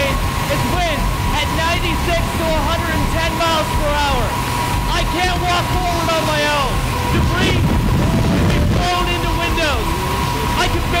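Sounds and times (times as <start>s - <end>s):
loud wind noise from fans: 0.0s - 11.0s
steady high whine: 0.0s - 11.0s.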